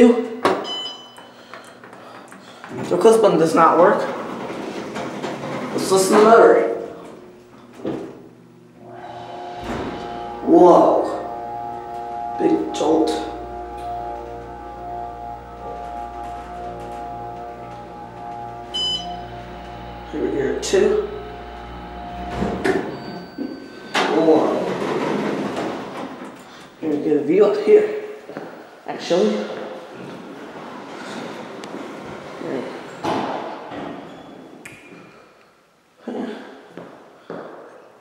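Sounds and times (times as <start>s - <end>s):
elevator pump motor whine: 4.2s - 26.5s
short high elevator chime: 8.8s - 26.0s.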